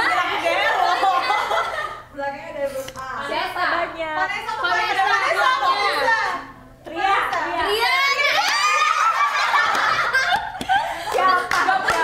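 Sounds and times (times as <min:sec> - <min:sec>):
women laughing and chattering: 0:07.7 - 0:12.0.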